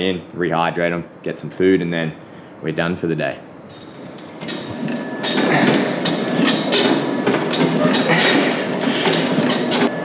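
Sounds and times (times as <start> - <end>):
gym machine rattling and clanking: 3.7 - 9.9
gym machine knocks: 3.8 - 9.9.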